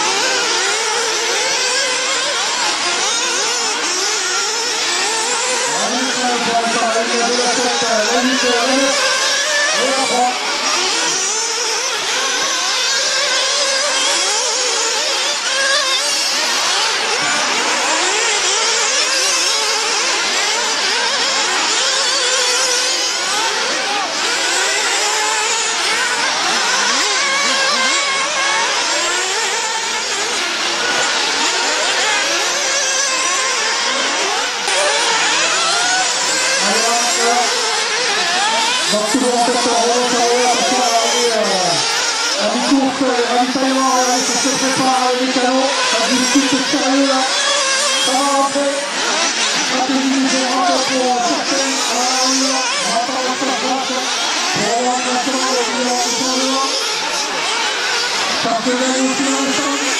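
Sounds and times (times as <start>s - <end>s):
small nitro engines revving: 0.0s - 59.9s.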